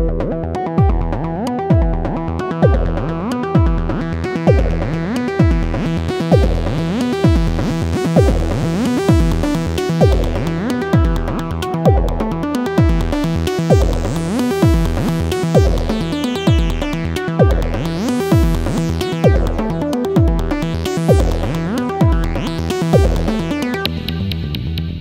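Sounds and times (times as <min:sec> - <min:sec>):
four-on-the-floor drum beat: 0:00.0 - 0:24.9
ticking hi-hats: 0:00.6 - 0:25.0.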